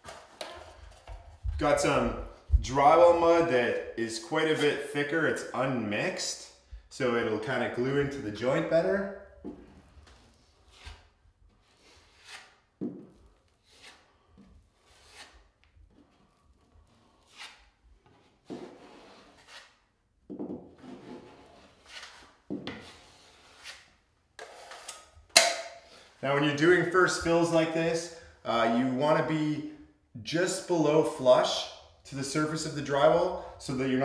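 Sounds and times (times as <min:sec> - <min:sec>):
putty knife scraping drywall mud: 0:09.6 - 0:20.0, 0:20.6 - 0:25.3.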